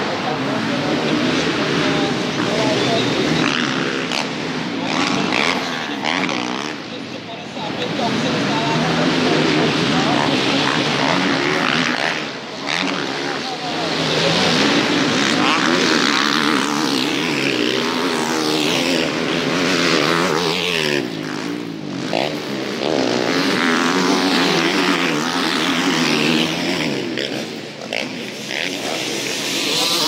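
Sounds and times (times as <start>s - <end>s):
motocross engines revving: 0.0s - 30.0s.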